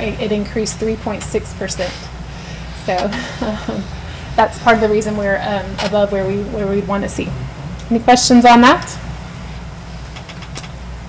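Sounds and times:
low room tone hum: 0:00.0 - 0:11.0.

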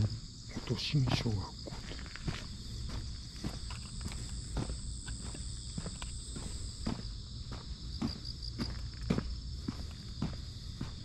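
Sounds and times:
footsteps on asphalt: 0:00.0 - 0:11.0.

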